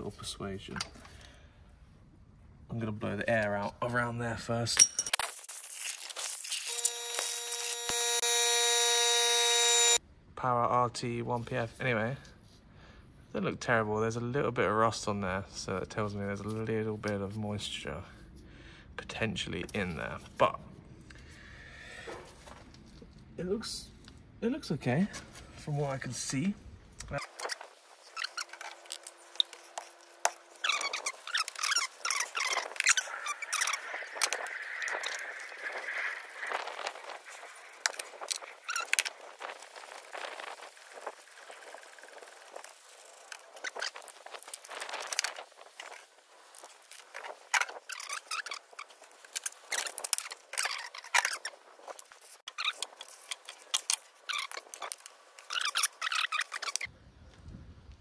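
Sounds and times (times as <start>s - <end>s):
tools clinking and scraping: 0.7s - 1.1s, 4.8s - 7.7s.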